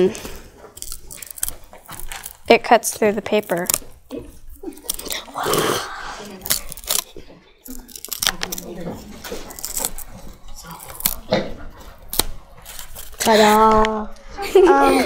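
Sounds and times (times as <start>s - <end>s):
paper rustling and crinkling: 8.1s - 13.9s.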